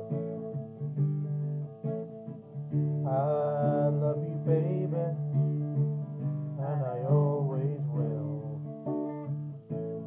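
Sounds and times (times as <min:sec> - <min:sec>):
acoustic guitar chords: 0:00.0 - 0:10.0
man singing: 0:03.0 - 0:08.9.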